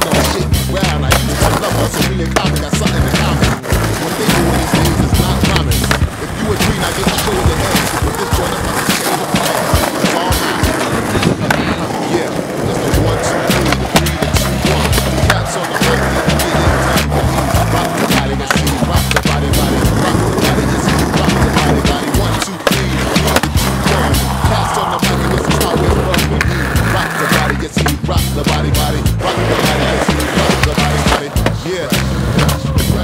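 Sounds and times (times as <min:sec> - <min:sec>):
music with deep bass line: 0:00.0 - 0:10.8, 0:12.8 - 0:33.0
skateboard clacks: 0:00.0 - 0:33.0
skateboard wheels rolling on concrete: 0:00.0 - 0:33.0.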